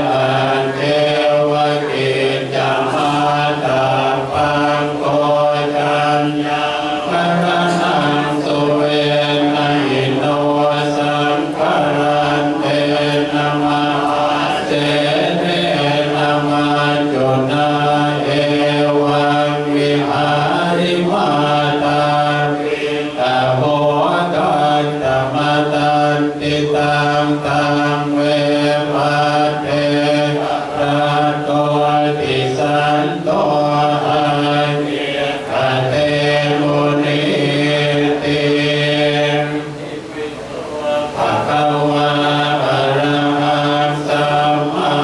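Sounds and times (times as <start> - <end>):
monks chanting in unison: 0.0 - 45.0.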